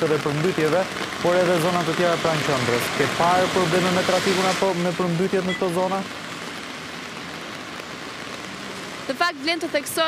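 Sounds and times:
heavy rain on wet street: 0.0 - 10.0.

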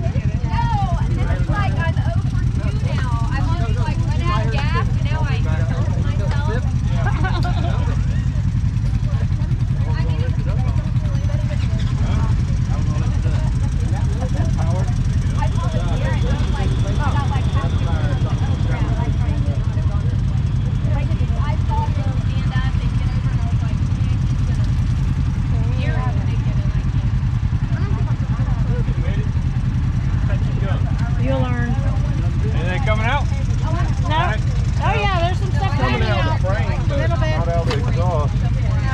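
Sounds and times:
people talking: 0.0 - 38.9
vehicle engine idling: 0.0 - 38.9.

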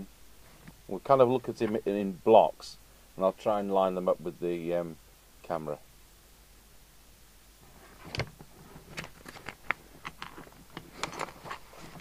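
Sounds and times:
paper pages rustling: 8.6 - 12.0.

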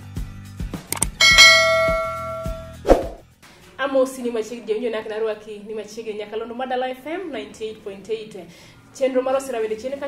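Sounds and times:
click: 0.9 - 1.2
bright bell chime: 1.2 - 2.7.

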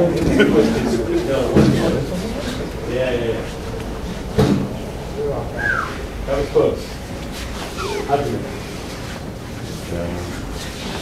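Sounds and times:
indistinct voices in a hall: 0.0 - 11.0.

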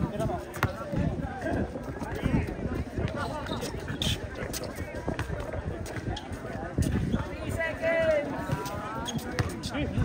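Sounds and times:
footsteps on hard court: 8.0 - 9.7.

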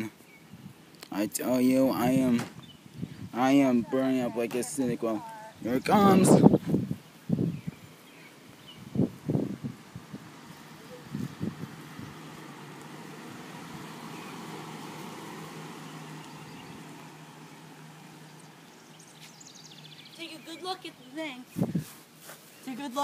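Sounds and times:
engine hum: 0.0 - 21.1.

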